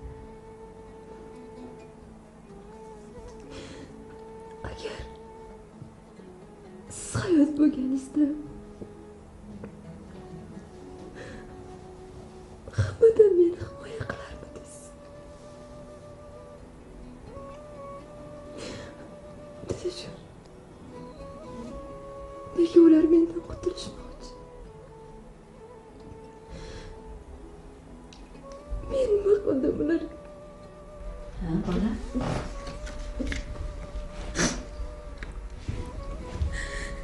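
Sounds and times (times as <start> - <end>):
faint steady drone: 0.0 - 37.0
soft background music: 0.0 - 37.0.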